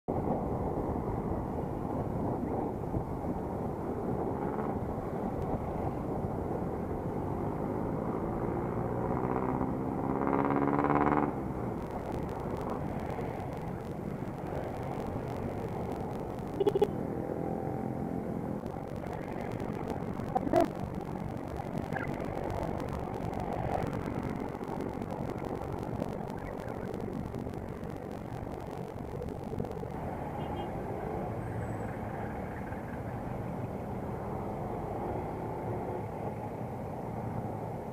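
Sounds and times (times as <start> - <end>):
road noise: 0.1 - 37.9
motorcycle engine: 7.6 - 30.7.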